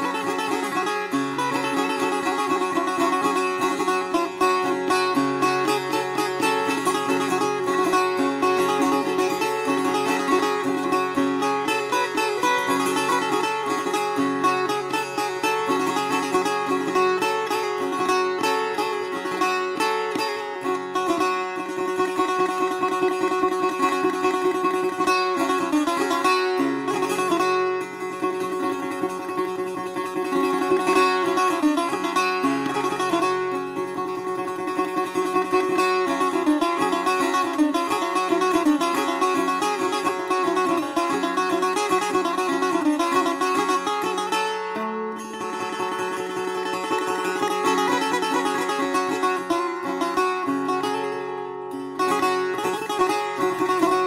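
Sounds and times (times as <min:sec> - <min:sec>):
setar plucked solo: 0:00.0 - 0:54.0.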